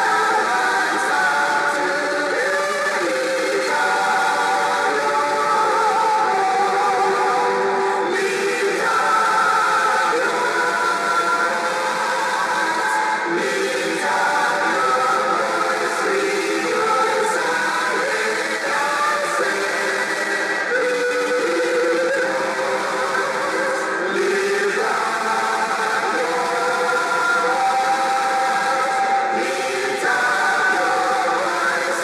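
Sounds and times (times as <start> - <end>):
women's choir singing: 0.0 - 32.0.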